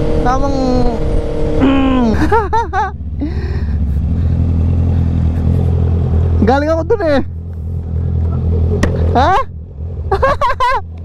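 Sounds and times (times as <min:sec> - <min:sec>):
motorcycle engine idling: 0:00.2 - 0:10.7.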